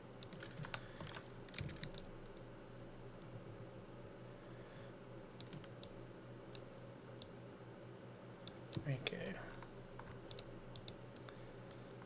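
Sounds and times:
faint steady hum: 0:00.0 - 0:12.0
computer mouse clicking: 0:00.2 - 0:02.1, 0:05.4 - 0:07.4, 0:10.0 - 0:11.9.

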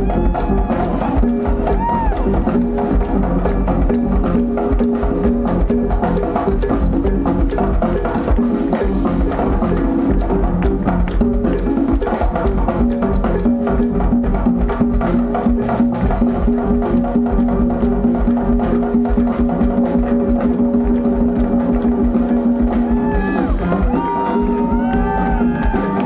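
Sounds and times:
bass guitar: 0:00.0 - 0:26.0
live band fast groove: 0:00.0 - 0:26.0
person clapping: 0:24.5 - 0:26.0.

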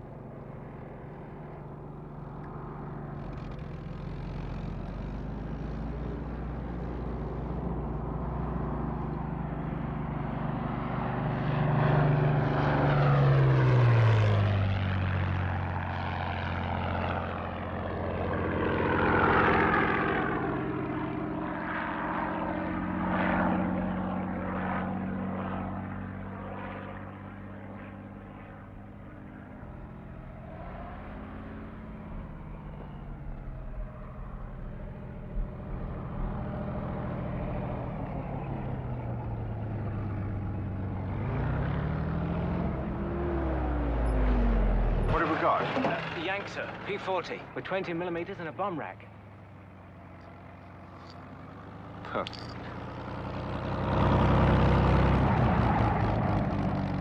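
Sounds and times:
propeller plane flying past: 0:00.0 - 0:57.0.

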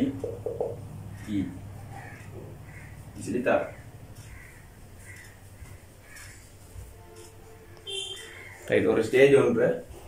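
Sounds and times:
low steady hum: 0:00.0 - 0:08.8
faint bird calls: 0:00.3 - 0:06.6, 0:07.9 - 0:08.7.

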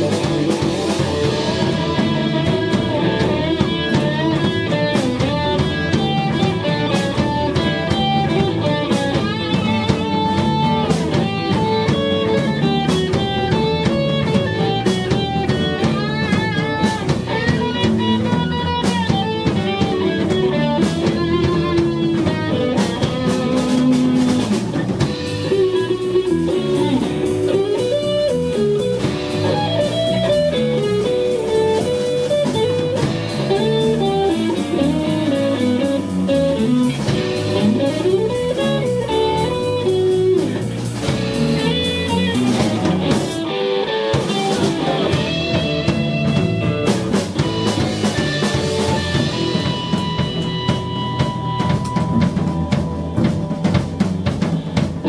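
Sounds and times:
lead guitar bending notes: 0:00.0 - 0:55.0
live rock band playing: 0:00.0 - 0:55.0.

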